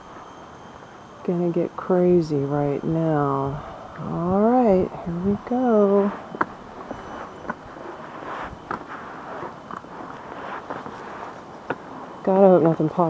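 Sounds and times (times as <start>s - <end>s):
footsteps on stone and earth: 6.1s - 12.0s.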